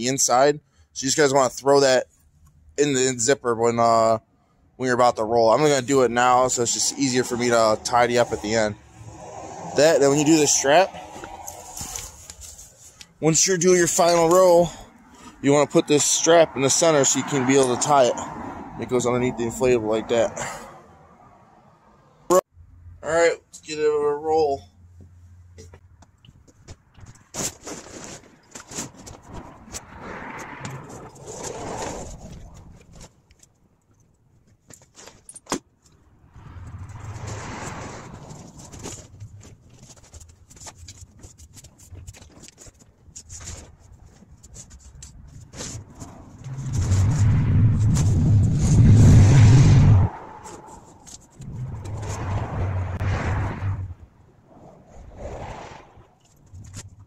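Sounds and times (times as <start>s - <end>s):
heavy low rush: 5.2s - 12.4s, 46.1s - 54.2s
vinyl fabric rustling on asphalt: 5.6s - 15.4s, 24.9s - 49.0s.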